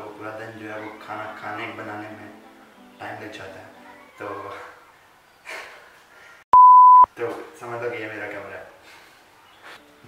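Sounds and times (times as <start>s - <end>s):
electronic censor bleep: 6.6s - 7.1s.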